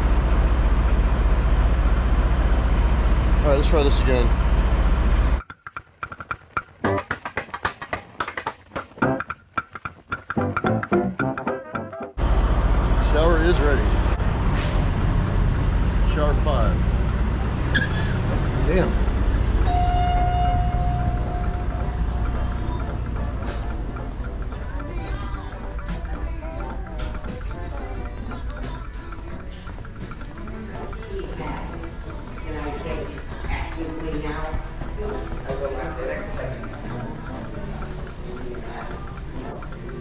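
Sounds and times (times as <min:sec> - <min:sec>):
steady low rumble: 0:00.0 - 0:05.4, 0:12.2 - 0:40.0
background music: 0:09.0 - 0:12.2, 0:16.1 - 0:40.0
indistinct voices: 0:12.9 - 0:40.0
long steady tone: 0:19.5 - 0:24.3.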